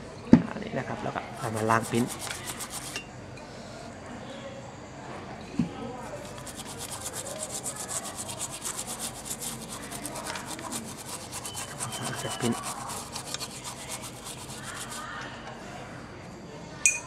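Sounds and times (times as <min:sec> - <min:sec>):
toothbrush scrubbing circuit board: 0:01.4 - 0:03.0, 0:06.0 - 0:15.2.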